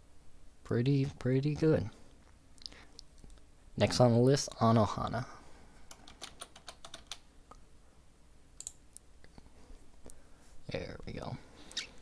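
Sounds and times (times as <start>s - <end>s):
keyboard typing: 5.9s - 7.2s.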